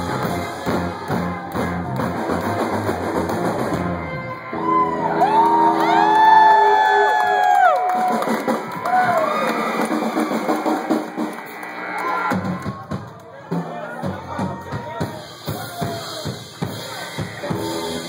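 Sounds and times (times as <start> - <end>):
rock band playing: 0.0 - 6.8, 7.8 - 18.0
crowd cheering: 0.0 - 18.0.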